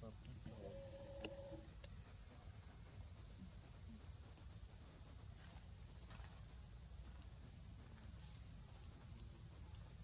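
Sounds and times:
high-pitched insect chorus: 0.0s - 10.0s.

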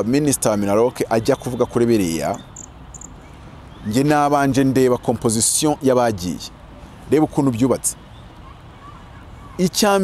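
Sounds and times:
man speaking: 0.0s - 2.5s, 3.8s - 8.0s, 9.6s - 10.0s
faint outdoor background: 0.0s - 10.0s
insect chirps: 2.5s - 3.2s.

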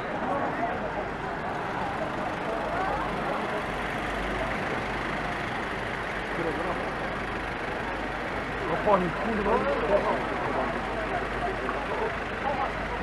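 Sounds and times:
tyres on wet road: 0.0s - 13.0s
vans driving past: 0.0s - 13.0s.

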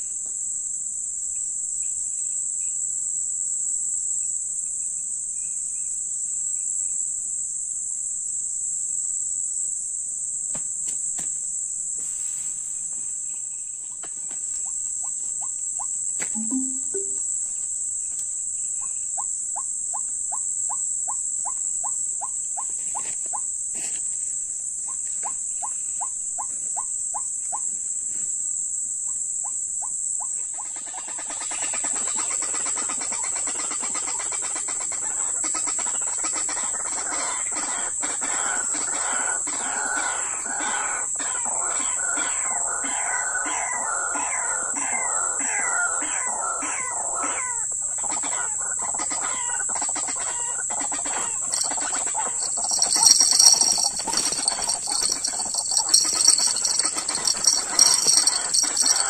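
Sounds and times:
high insect chorus: 0.0s - 16.3s, 17.6s - 59.0s
birds calling rapidly: 51.1s - 59.0s
short clicking calls: 51.5s - 59.0s.

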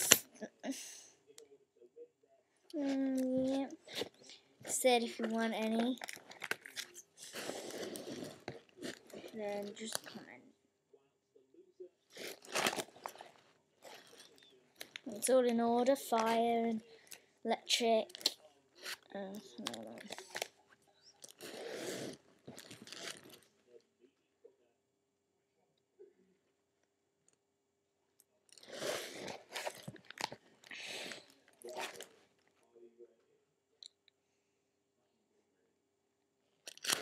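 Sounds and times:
plastic pages rustling: 2.8s - 10.2s, 12.2s - 16.4s, 18.0s - 20.5s, 22.5s - 23.4s
plastic sleeve pages rustling: 12.3s - 15.3s.

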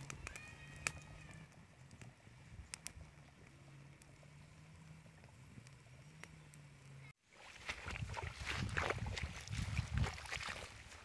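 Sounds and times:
wood fire crackling: 0.0s - 7.1s.

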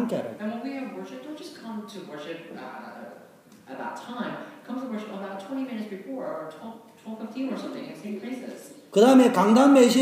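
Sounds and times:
person talking: 8.9s - 10.0s.

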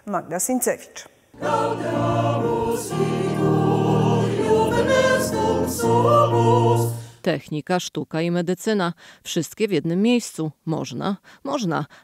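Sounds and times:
mixed choir singing in harmony: 1.4s - 7.2s.

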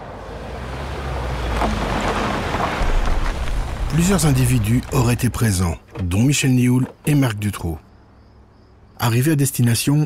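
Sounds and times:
low rumbling noise: 1.7s - 5.8s.

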